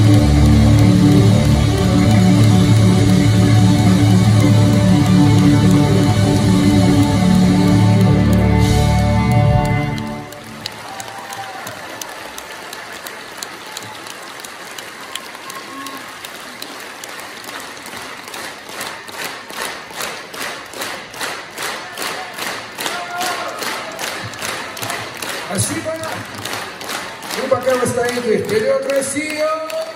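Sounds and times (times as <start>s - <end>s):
rock band final chord: 0.0s - 10.6s
audience applauding: 0.0s - 29.9s
rhythmic clapping in unison: 0.0s - 29.9s.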